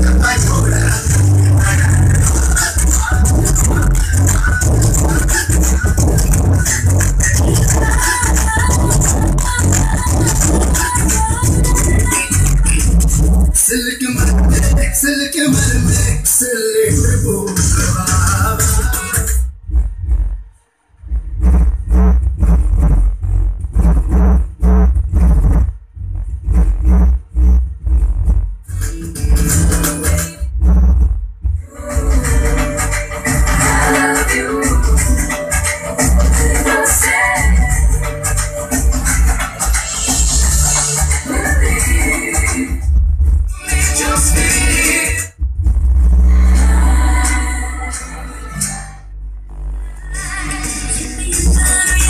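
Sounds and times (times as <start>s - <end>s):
heavy bass music through woofer: 0.0s - 52.0s.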